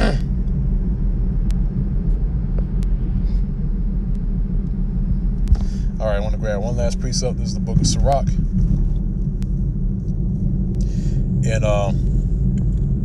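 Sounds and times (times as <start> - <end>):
constant hum: 0.0 - 13.0
low rumble: 0.0 - 13.0.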